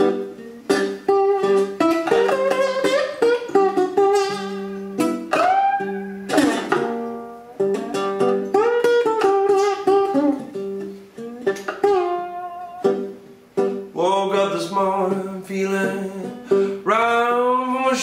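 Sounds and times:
slide ukulele blues: 0:00.0 - 0:18.0.

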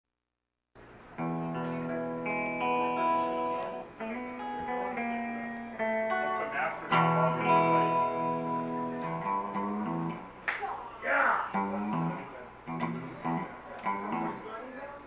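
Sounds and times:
electric guitar notes: 0:01.1 - 0:10.4, 0:11.5 - 0:14.7.

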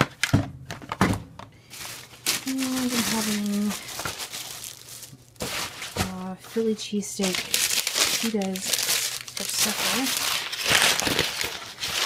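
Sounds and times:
shopping bag and groceries rustling: 0:01.6 - 0:12.0.

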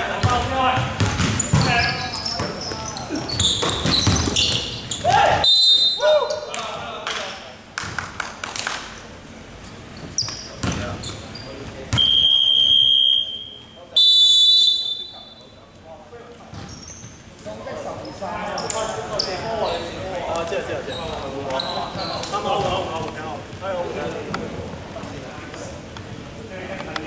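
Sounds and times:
basketball bouncing on wooden floor: 0:00.2 - 0:01.8, 0:03.3 - 0:05.1, 0:10.6 - 0:10.9
referee's whistle blasts: 0:05.4 - 0:06.1, 0:12.0 - 0:15.5.

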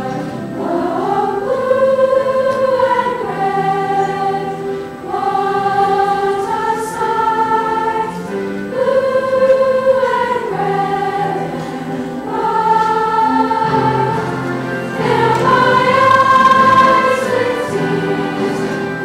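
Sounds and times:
choir singing sustained chords: 0:00.0 - 0:19.0.

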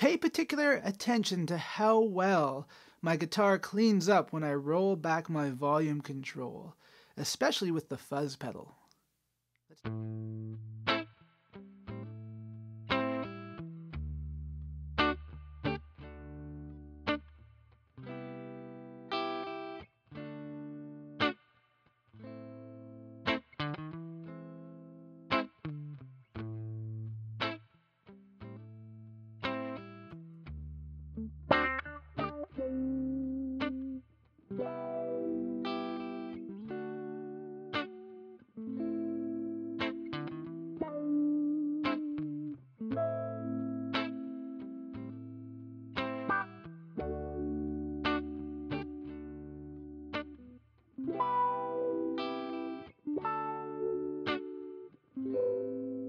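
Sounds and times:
electric guitar with fuzz: 0:34.6 - 0:50.4.

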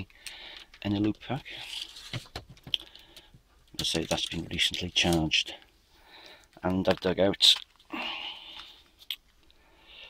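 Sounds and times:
plastic case rustling: 0:00.6 - 0:03.0.

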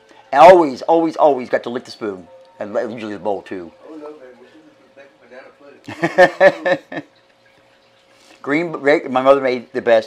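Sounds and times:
faint steady hum: 0:00.0 - 0:10.0
man laughing: 0:05.9 - 0:07.1.

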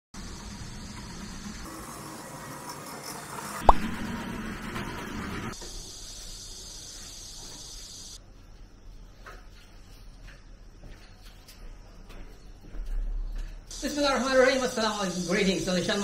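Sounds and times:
cicadas buzzing: 0:05.6 - 0:08.2, 0:13.7 - 0:16.0.

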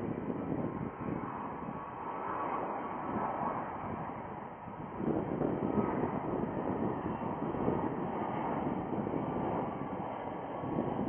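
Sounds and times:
jet airliner roar: 0:00.0 - 0:11.0
wind buffeting microphone: 0:00.0 - 0:11.0.

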